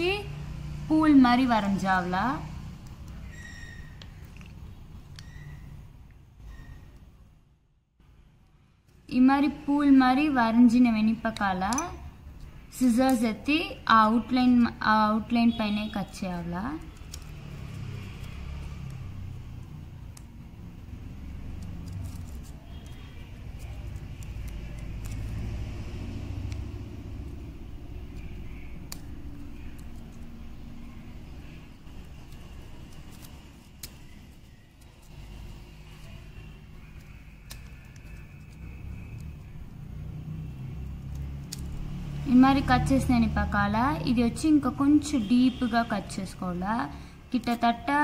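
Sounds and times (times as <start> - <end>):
scissors cutting paper: 10.2 - 14.3, 15.3 - 43.0.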